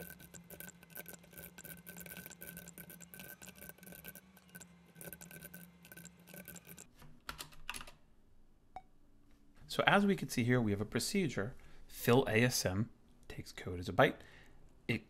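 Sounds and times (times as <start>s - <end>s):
keyboard typing: 0.0s - 8.0s.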